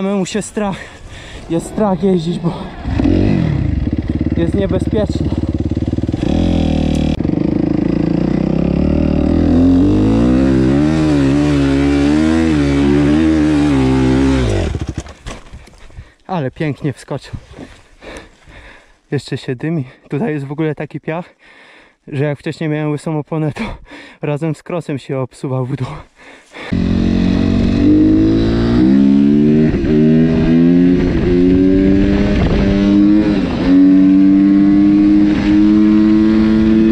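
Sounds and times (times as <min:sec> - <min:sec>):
motorcycle engine under throttle: 0:01.7 - 0:15.2, 0:26.7 - 0:36.9.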